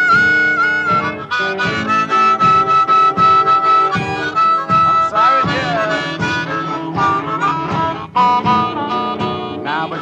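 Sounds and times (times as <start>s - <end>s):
band playing steady beat: 0.0s - 10.0s
blues harmonica solo: 0.0s - 10.0s.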